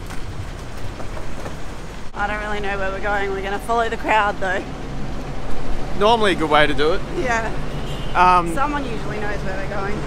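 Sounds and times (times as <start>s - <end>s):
footsteps and luggage knocks: 0.0s - 2.1s
bus rumbling: 0.0s - 10.0s
traffic: 0.0s - 10.0s.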